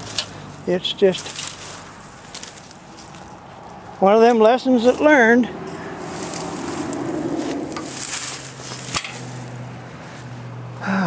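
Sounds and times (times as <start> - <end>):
rustling and handling noise: 0.0 - 4.0, 6.0 - 10.5.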